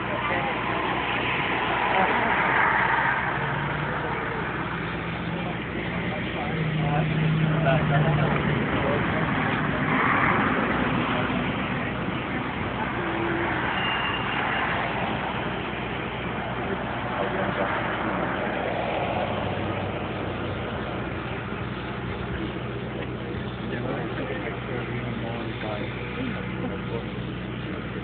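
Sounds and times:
low engine hum: 0.0 - 28.0
people talking: 0.0 - 28.0
vehicle noise: 0.0 - 28.0.

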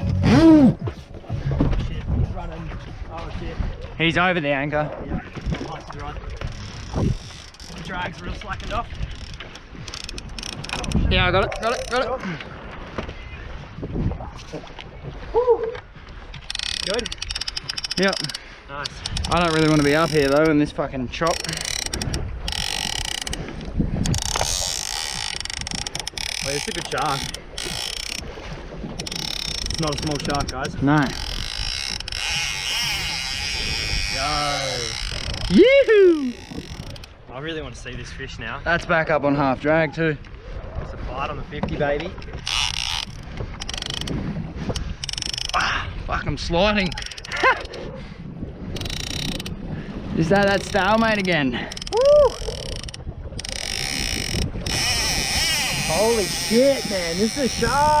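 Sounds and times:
wind buffeting microphone: 0.0 - 58.0
man laughing and hooting: 0.2 - 0.8, 15.3 - 15.8, 35.5 - 36.3, 51.9 - 52.6
fishing reel ratcheting clicks: 6.0 - 8.3, 9.0 - 12.0, 16.4 - 28.2, 29.0 - 37.2, 42.3 - 45.6, 46.8 - 47.4, 48.8 - 49.6, 50.4 - 58.0.

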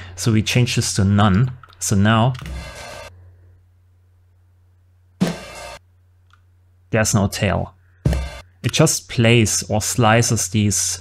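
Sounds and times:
drum hit: 5.2 - 5.8, 8.1 - 8.4.

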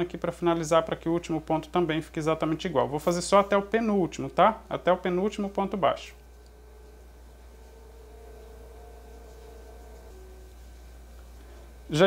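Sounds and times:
faint thin steady tones: 0.0 - 12.0
steady low hum: 0.0 - 12.0
faint hiss: 0.4 - 12.0.

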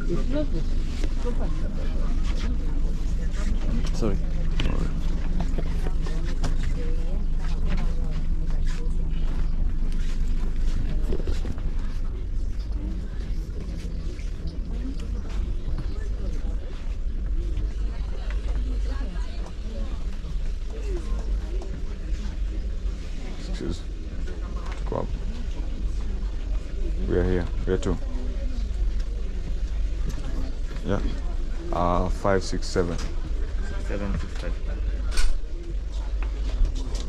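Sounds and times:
indistinct chatter of passengers: 0.0 - 37.0
steady low rumble: 0.0 - 37.0.

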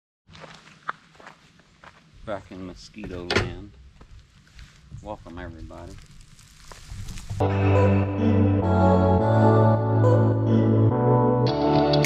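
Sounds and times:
footsteps on gravel: 0.3 - 7.4.

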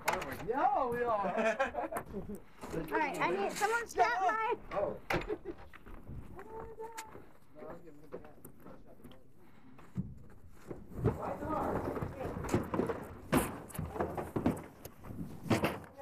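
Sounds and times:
bobsleds knocking and scraping on ice: 1.9 - 16.0.

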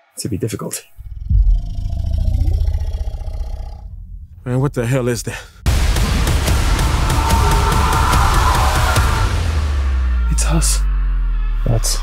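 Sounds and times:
deep monster growling rumble: 0.9 - 11.0.

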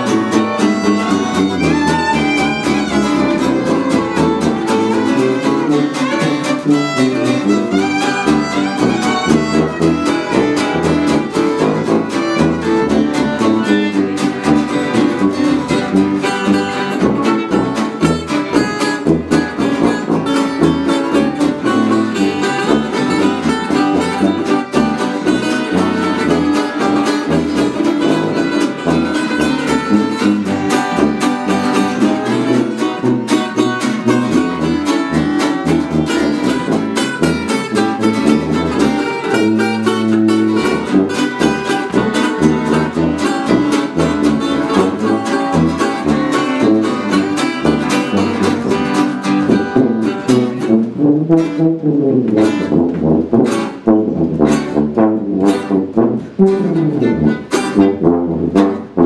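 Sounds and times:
fiddle: 0.0 - 50.7
acoustic guitar: 0.0 - 59.0
resonator guitar: 0.0 - 59.0.

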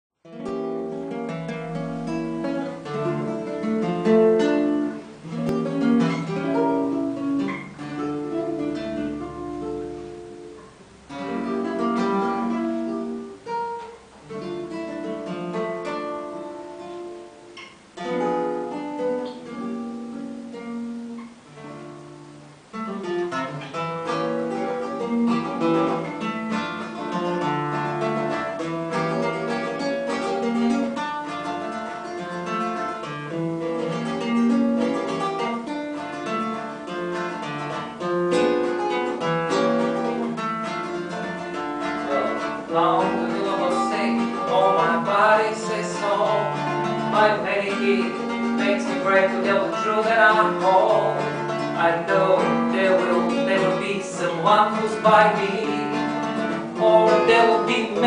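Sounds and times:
fingerpicked acoustic guitar: 0.2 - 58.0.

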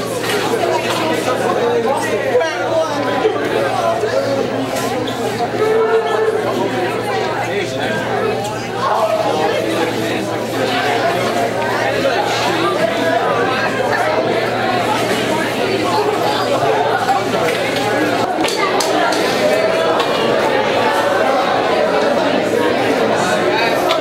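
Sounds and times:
crowd chatter in a hall: 0.0 - 24.0.

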